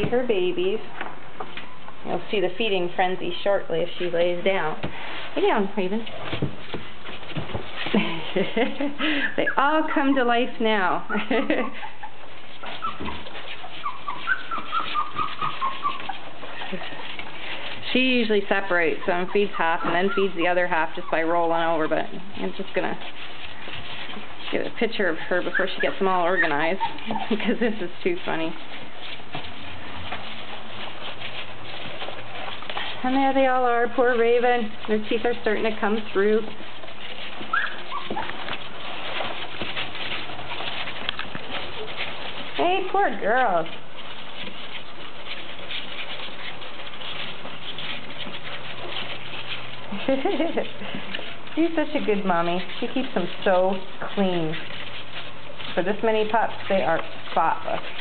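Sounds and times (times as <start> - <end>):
puppies whining: 1.5 - 2.1, 6.1 - 58.0.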